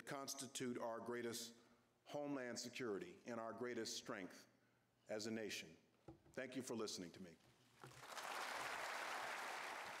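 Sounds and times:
audience applauding: 0:07.9 - 0:10.0.

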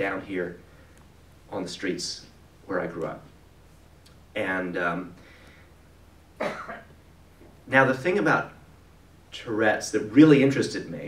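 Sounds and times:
low room hum: 0:00.0 - 0:11.0
man coughing: 0:06.4 - 0:06.9.

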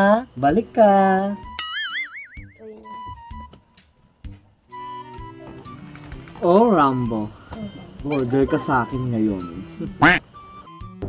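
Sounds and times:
cartoon boing sound effect: 0:01.6 - 0:02.7
light musical tones: 0:02.4 - 0:11.0.

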